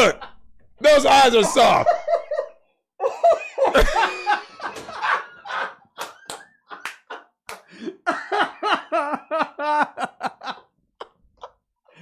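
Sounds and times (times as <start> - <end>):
men laughing: 0.0 - 11.7.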